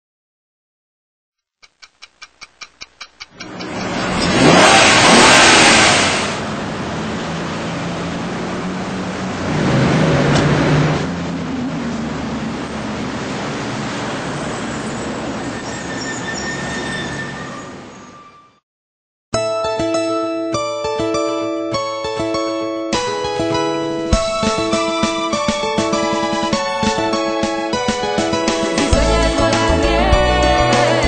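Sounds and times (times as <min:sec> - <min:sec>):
quick ticks: 0:01.4 - 0:03.9
steady traffic noise: 0:01.6 - 0:18.3
car passing with a loud rush: 0:03.4 - 0:15.9.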